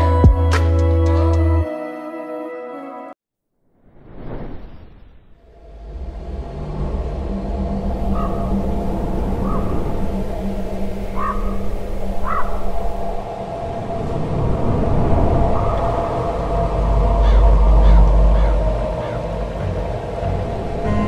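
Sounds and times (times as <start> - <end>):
low rumble: 4.0 - 21.0
steady held tones: 5.4 - 21.0
animal-like calls: 7.8 - 14.2, 15.3 - 21.0.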